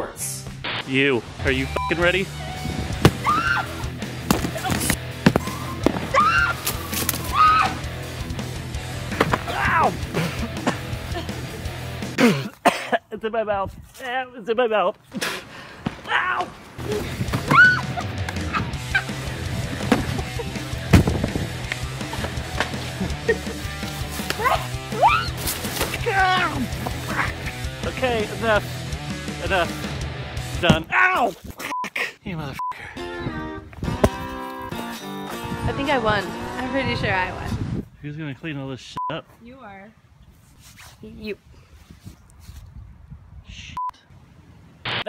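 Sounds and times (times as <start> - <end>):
background music: 0.0 - 12.6, 16.8 - 31.0, 33.0 - 37.4
sharp thud: 3.0 - 3.3, 20.9 - 21.3
people shrieking and yelping: 3.2 - 7.9, 9.4 - 10.1, 16.0 - 19.2, 23.0 - 27.6
snowballs thudding on cardboard boxes: 4.2 - 7.3, 9.1 - 9.6, 25.3 - 27.1.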